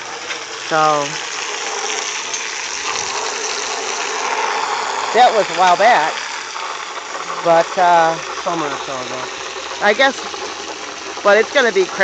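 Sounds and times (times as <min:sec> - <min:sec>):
water gushing onto wet dirt: 0:00.0 - 0:12.0.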